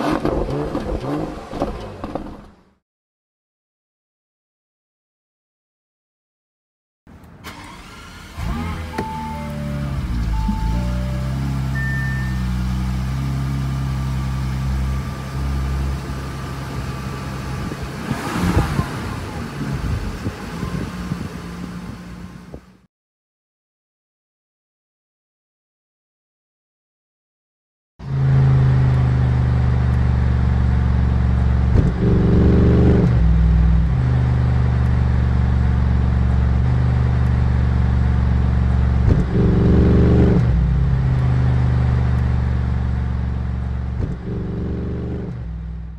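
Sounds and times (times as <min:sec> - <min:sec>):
car engine idling and revving: 0:00.0 - 0:02.8, 0:07.1 - 0:22.9, 0:28.0 - 0:45.9
car engine starting and idling: 0:07.1 - 0:22.8
short electronic beeps: 0:08.9 - 0:12.7.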